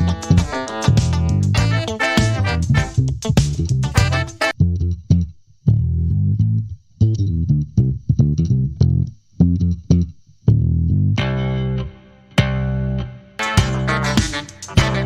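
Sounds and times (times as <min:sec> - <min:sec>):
electric bass line: 0:00.0 - 0:15.0.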